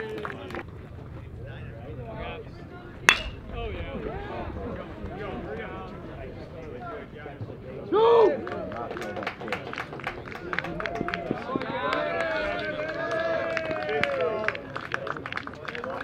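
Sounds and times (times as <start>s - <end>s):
crowd cheering and clapping: 8.0s - 16.0s.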